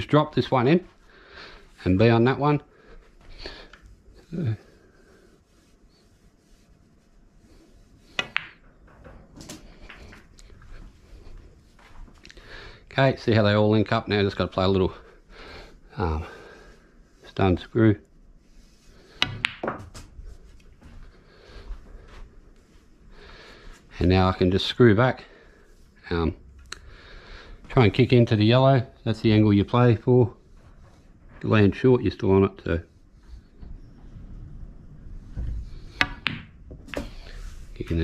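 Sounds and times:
billiard balls clicking: 8.1 - 10.7, 19.2 - 20.2, 33.6 - 38.0
cue tip striking ball: 8.2 - 8.7, 19.2 - 20.0, 36.0 - 37.2.

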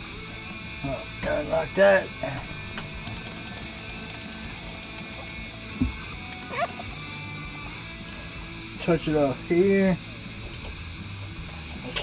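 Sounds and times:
quiet background music: 0.0 - 12.0
steady hum: 2.4 - 8.8.

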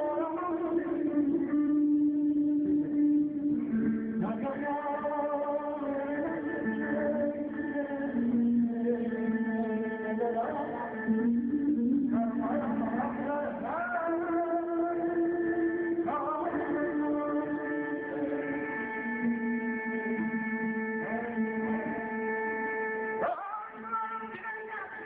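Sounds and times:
guitar sustained notes: 0.0 - 25.0
man singing into microphone: 0.0 - 25.0.

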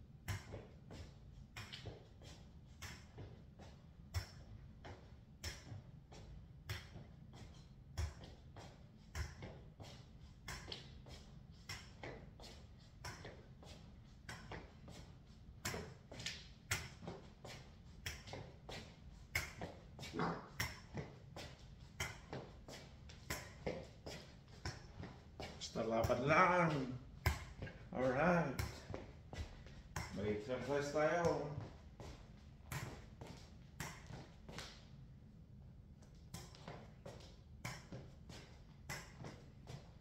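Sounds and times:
slow uneven footsteps: 0.4 - 35.1.

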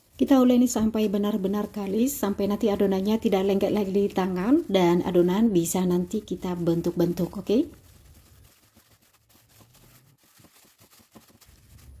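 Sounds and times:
hand kneading dough: 0.0 - 12.0
plastic crinkling: 0.0 - 12.0.

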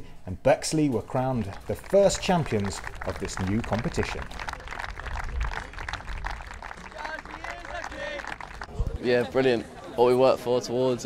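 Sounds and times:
small group clapping: 1.3 - 9.5.

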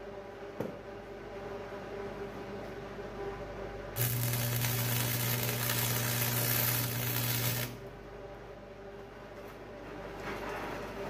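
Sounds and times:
welding arc crackling: 4.0 - 7.8.

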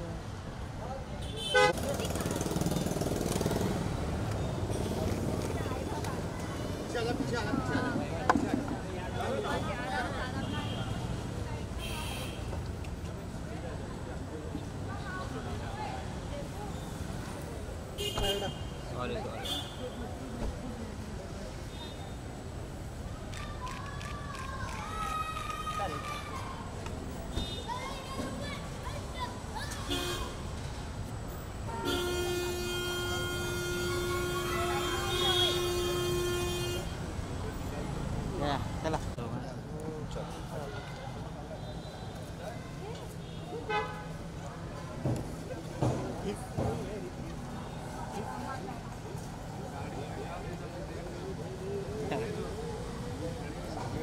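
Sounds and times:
crowd and street noise: 0.0 - 54.0
voices: 0.0 - 54.0
car horn beep: 1.3 - 1.8.

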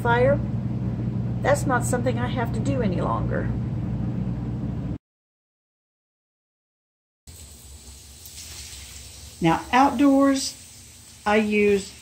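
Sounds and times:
low rumble: 0.0 - 5.0
garden hose spraying water: 7.3 - 12.0.

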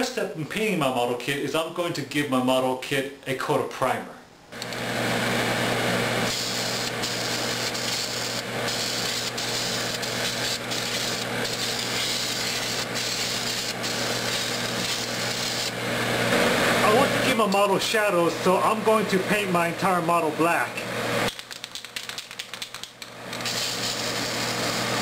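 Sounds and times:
exhaust fan hum: 4.5 - 21.3.

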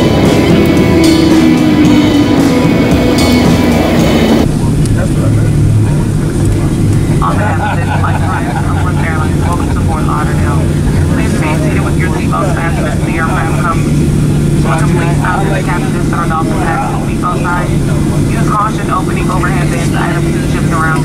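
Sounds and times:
jet engines droning in cabin: 0.0 - 21.0
low humming tones: 0.0 - 21.0.

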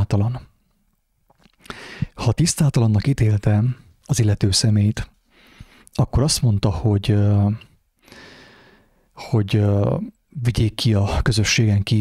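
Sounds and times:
man breathing in: 1.6 - 2.2, 5.3 - 5.9, 8.0 - 9.1.

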